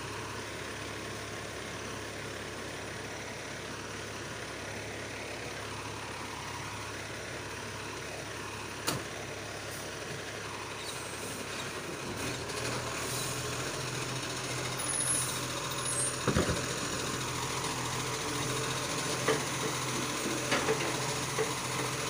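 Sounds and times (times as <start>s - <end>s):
garbage truck running: 0.0s - 22.0s.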